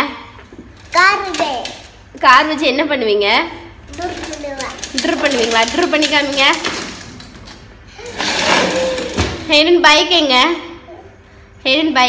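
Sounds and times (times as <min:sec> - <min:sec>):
plastic wheels rolling on tiles: 0:00.7 - 0:02.0, 0:03.9 - 0:09.5.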